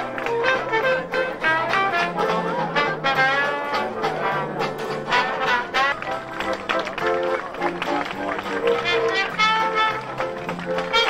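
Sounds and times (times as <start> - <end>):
brass band music: 0.0 - 11.0
crowd noise: 0.0 - 11.0.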